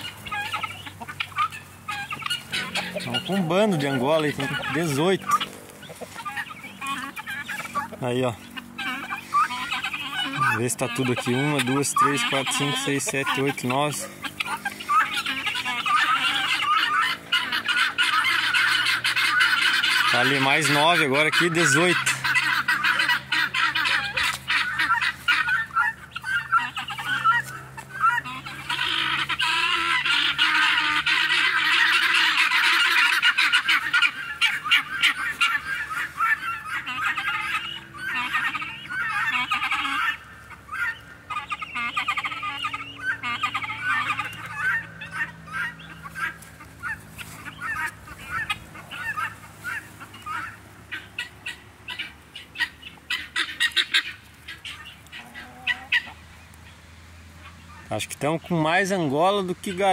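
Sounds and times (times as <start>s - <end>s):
guineafowl flock calling: 0.0s - 59.9s.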